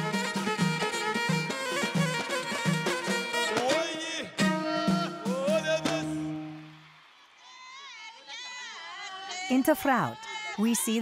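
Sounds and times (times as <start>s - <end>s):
live folk music with voices: 0.0s - 10.4s.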